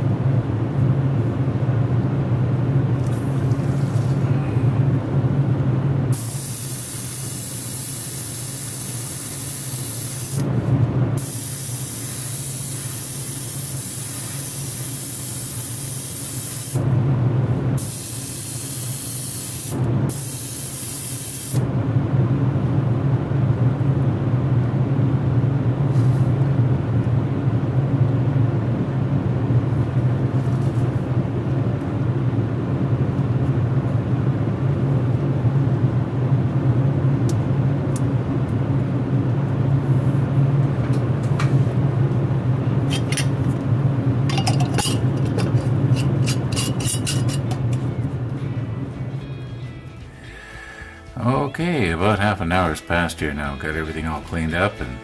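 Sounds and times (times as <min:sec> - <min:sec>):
airbrush spraying hiss: 0:06.1 - 0:10.4, 0:11.2 - 0:16.8, 0:17.8 - 0:21.6.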